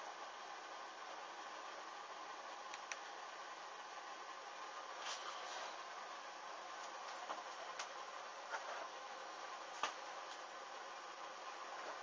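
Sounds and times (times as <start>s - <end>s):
small flames hissing: 4.8s - 12.0s.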